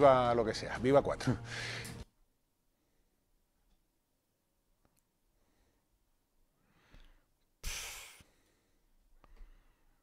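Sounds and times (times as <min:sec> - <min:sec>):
man breathing close to microphone: 0:01.4 - 0:02.0, 0:06.6 - 0:10.0
loud puff of breath: 0:01.5 - 0:02.0, 0:07.6 - 0:08.7.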